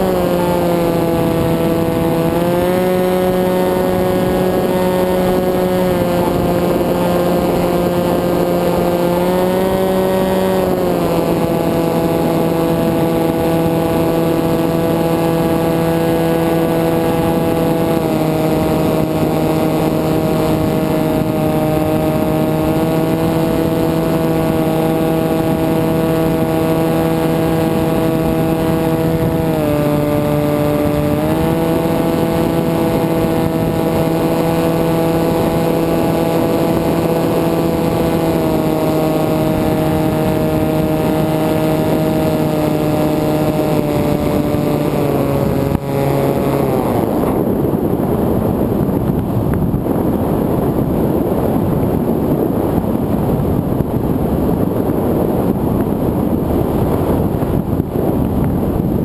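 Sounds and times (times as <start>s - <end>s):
drone motor and propeller: 0.0s - 59.0s
wind noise: 0.0s - 59.0s.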